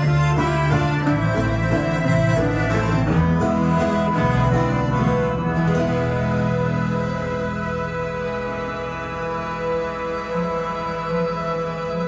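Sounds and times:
accordion chords: 0.0s - 12.0s
low bass line: 0.0s - 12.0s.

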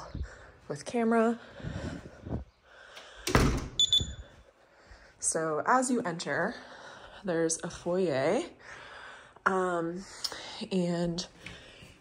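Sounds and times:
front door shutting thud: 3.2s - 4.2s
keypad lock beep: 3.8s - 4.2s.

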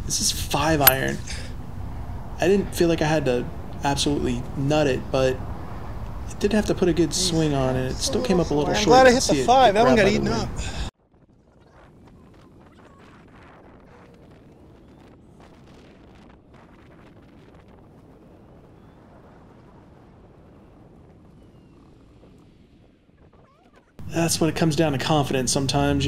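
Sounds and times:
wind rumble: 0.0s - 26.0s
golf cart tyre noise: 0.3s - 10.9s.

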